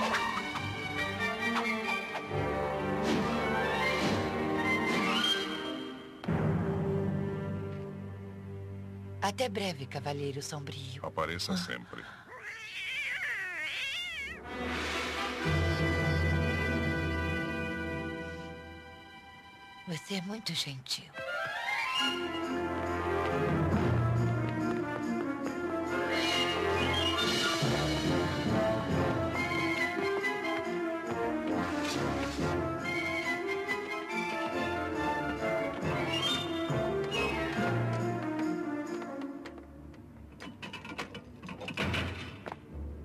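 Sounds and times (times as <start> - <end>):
orchestral music: 0.0 - 9.2, 14.4 - 20.3, 21.2 - 39.8
cat yowling: 12.3 - 14.4.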